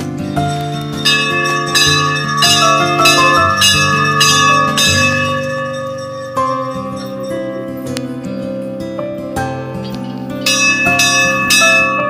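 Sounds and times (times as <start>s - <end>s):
background music: 0.0s - 12.0s
brass bell ringing: 0.3s - 7.9s, 10.4s - 12.0s.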